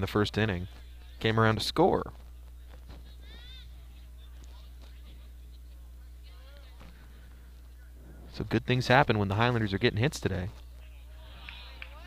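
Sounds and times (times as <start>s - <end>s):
low hum: 2.1s - 11.2s.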